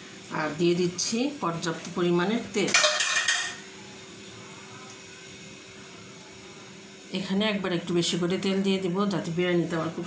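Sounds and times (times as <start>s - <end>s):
kitchenware clattering: 2.6s - 3.7s
faint hum: 3.6s - 10.0s.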